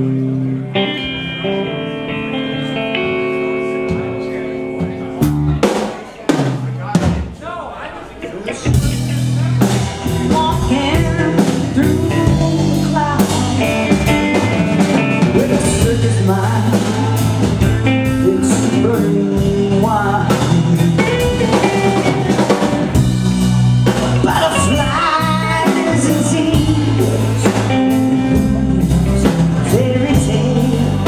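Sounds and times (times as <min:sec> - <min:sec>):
electric guitar bending notes: 0:00.0 - 0:06.0, 0:08.2 - 0:31.0
bass guitar: 0:00.0 - 0:07.3, 0:08.1 - 0:31.0
drum kit: 0:03.0 - 0:07.5, 0:08.2 - 0:31.0
woman singing: 0:10.3 - 0:14.1, 0:15.2 - 0:17.2, 0:24.2 - 0:27.2, 0:28.2 - 0:31.0.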